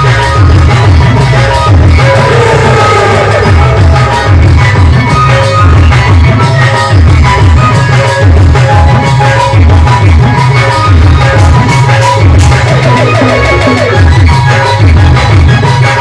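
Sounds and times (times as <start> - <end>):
heavy low drum beat: 0.0 - 15.9
held keyboard notes: 0.0 - 16.0.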